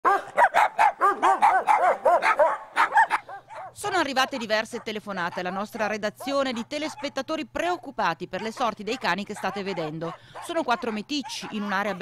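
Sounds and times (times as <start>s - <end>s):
small dogs barking rapidly: 0.0s - 7.2s, 8.4s - 12.0s.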